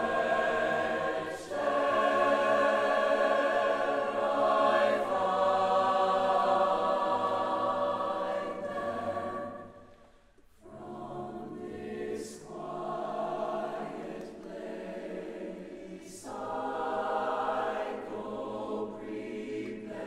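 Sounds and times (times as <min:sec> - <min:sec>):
choir singing in reverberant church: 0:00.0 - 0:20.0.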